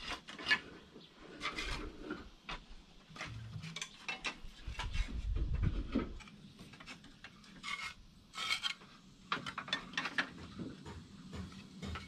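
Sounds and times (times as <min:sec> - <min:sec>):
clay roof tiles scraping: 0:00.0 - 0:12.0.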